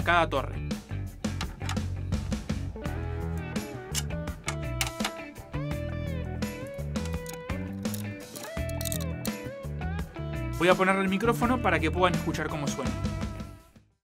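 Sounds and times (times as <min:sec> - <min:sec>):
background music with steady beat: 0:00.0 - 0:13.8.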